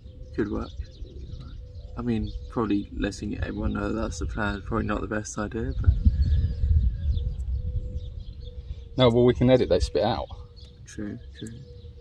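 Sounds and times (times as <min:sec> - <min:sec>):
bird chirps: 0:00.0 - 0:12.0
wind buffeting microphone: 0:00.0 - 0:12.0.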